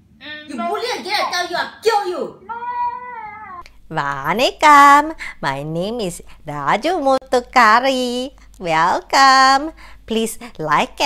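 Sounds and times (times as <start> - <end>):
drawn-out high cry: 2.4 - 3.6.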